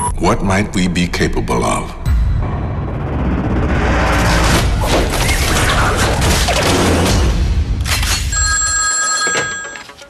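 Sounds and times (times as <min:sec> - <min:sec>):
telephone ringing: 0:08.3 - 0:10.0.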